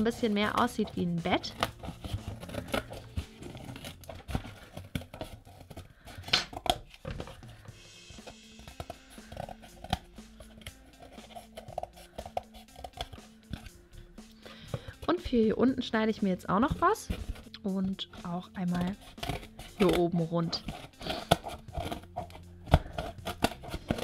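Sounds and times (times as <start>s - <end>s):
scissors cutting cardboard: 0.0s - 13.8s, 18.1s - 24.0s
quiet background music: 0.0s - 24.0s.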